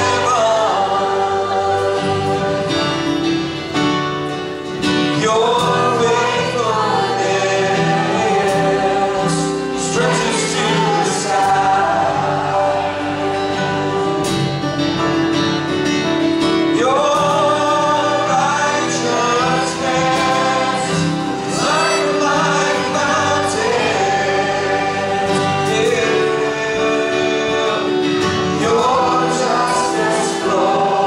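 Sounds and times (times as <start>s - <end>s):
group of voices singing: 0.0s - 3.5s, 4.9s - 14.7s, 16.6s - 31.0s
church band of guitars and violin: 0.0s - 31.0s.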